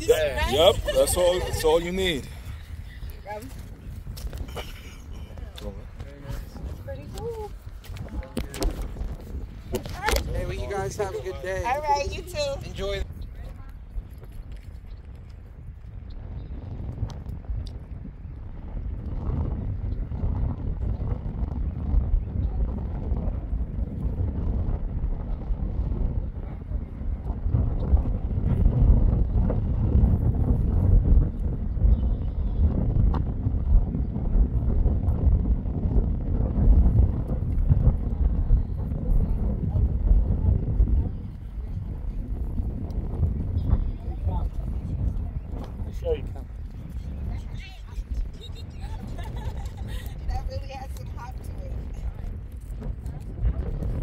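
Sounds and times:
wind buffeting microphone: 0:00.0 - 0:54.0.

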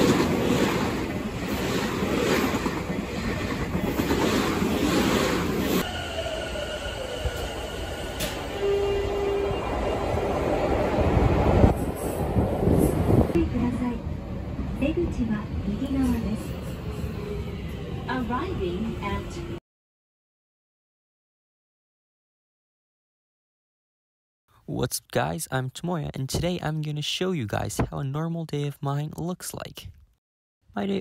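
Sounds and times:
train passing at speed: 0:00.0 - 0:19.6
train whine falling in pitch: 0:05.8 - 0:10.4.

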